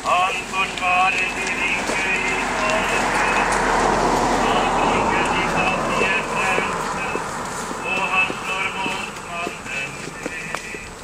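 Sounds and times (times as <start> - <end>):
group singing a hymn: 4.3 - 7.2, 7.8 - 10.5.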